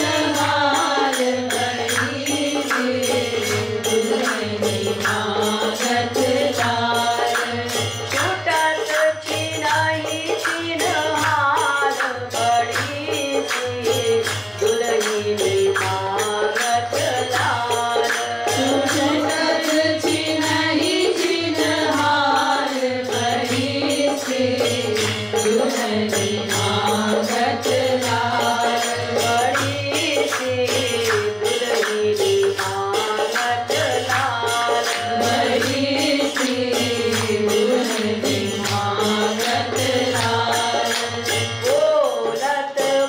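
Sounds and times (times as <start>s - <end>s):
harmonium: 0.0s - 43.0s
percussion beat: 0.0s - 43.0s
woman singing: 0.0s - 43.0s.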